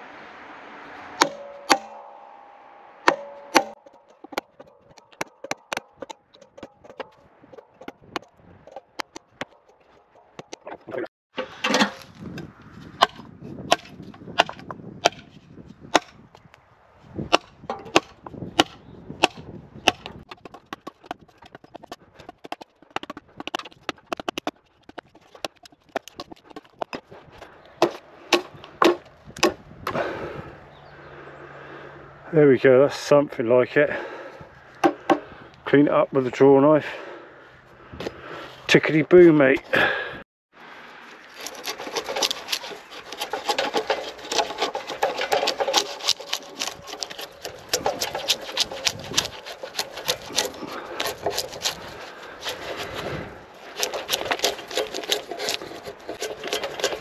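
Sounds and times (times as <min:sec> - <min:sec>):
axe chopping wood: 0:01.2 - 0:02.4, 0:03.0 - 0:12.4, 0:13.0 - 0:16.3, 0:17.2 - 0:27.1, 0:27.8 - 0:30.1, 0:34.8 - 0:35.3, 0:41.4 - 0:57.0.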